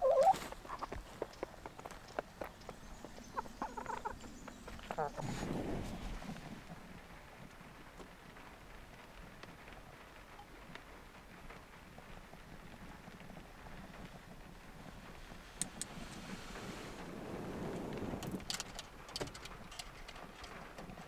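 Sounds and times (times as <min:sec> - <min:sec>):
hens clucking: 0:00.0 - 0:01.3, 0:03.0 - 0:05.5
faint steady hiss: 0:00.0 - 0:21.0.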